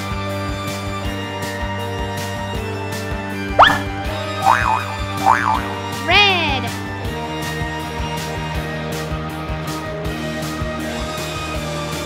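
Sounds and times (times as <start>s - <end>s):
background music: 0.0s - 12.0s
cartoon boing: 3.6s - 6.0s.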